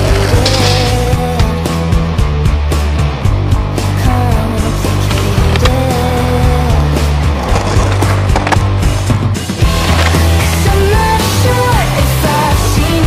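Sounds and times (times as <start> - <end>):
rock music: 0.0 - 13.0
skateboard rolling on concrete: 0.0 - 13.0
skateboard clacking on ground: 7.4 - 8.8.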